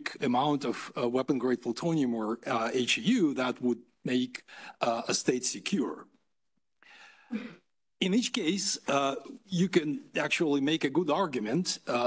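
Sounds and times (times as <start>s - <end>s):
man breathing: 6.8s - 7.6s.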